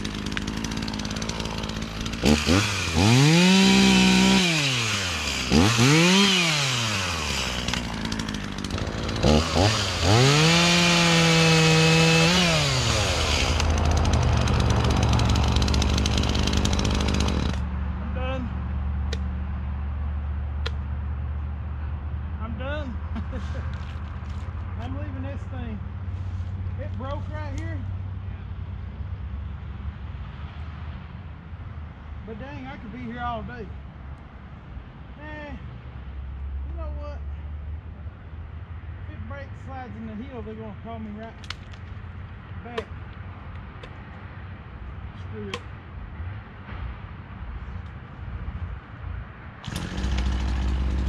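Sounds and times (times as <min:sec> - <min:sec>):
chainsaw revving and idling: 0:00.0 - 0:17.7, 0:49.6 - 0:51.0.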